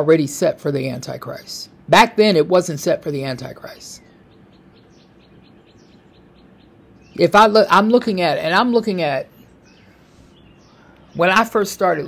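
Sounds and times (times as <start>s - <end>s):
small bird chirping: 3.0s - 12.0s.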